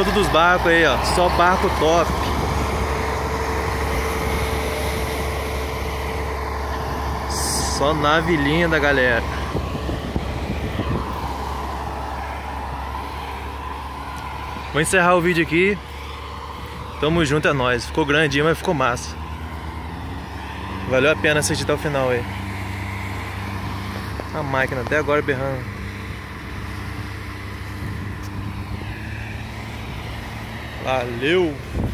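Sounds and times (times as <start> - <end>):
heavy machine engine droning: 0.0 - 31.9.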